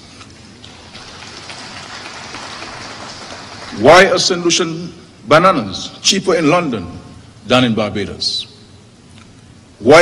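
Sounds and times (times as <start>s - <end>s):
audience applauding: 0.6s - 4.2s.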